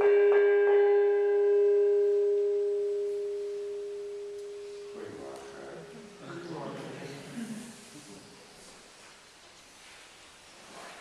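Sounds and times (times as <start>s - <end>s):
small gong ringing: 0.0s - 5.9s.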